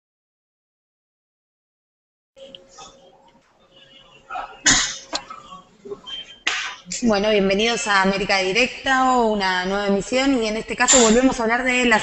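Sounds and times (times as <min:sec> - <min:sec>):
person sneezing: 0:04.3 - 0:05.5.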